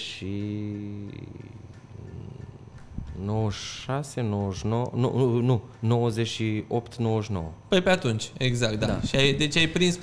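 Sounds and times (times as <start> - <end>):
man talking: 0.0 - 2.3, 3.1 - 10.0
man's creaky vocal fry: 1.0 - 2.8.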